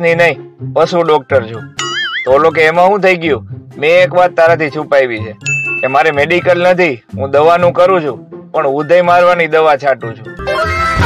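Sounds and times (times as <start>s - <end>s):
high ding: 1.8s - 2.7s, 5.4s - 6.5s
man speaking: 2.3s - 10.3s.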